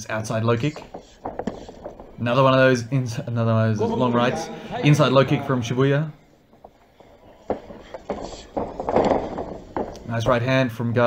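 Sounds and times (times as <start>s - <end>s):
crowd noise: 3.6s - 10.4s
bodies scuffling on mat: 6.4s - 10.4s.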